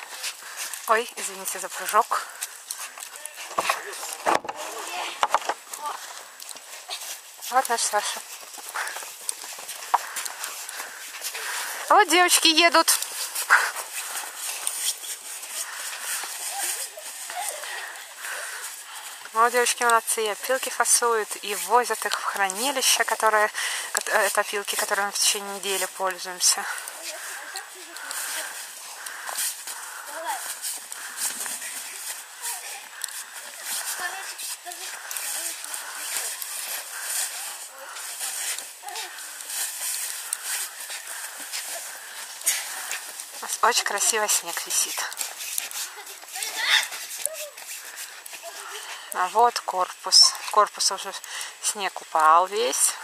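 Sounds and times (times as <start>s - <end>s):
faint voices: 0.0s - 52.0s
cart pulled over snow: 0.0s - 53.0s
rustling crunching noise: 0.0s - 53.0s
faint children's voices: 26.6s - 28.8s, 31.4s - 39.5s.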